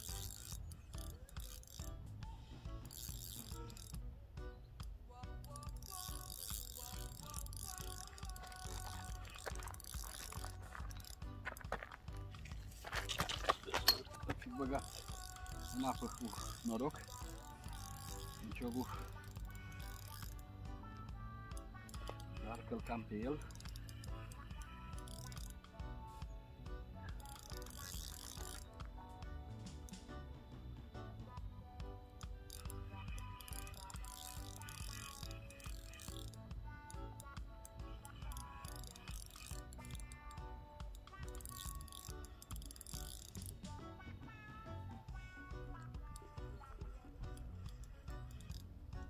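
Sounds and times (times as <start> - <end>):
fishing reel ratcheting whir: 0.0 - 4.1, 5.2 - 30.2, 30.8 - 49.0
background music: 0.0 - 49.0.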